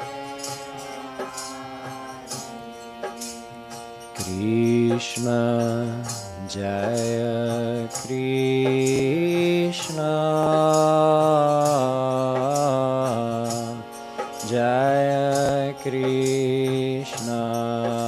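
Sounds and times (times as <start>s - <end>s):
harmonium: 0.0s - 18.0s
light steady beat: 0.0s - 18.0s
man singing devotional chant: 4.1s - 18.0s.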